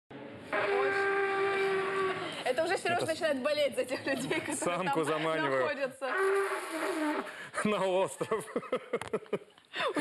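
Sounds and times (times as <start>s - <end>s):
animal horn blown: 0.5s - 2.4s, 6.1s - 7.4s.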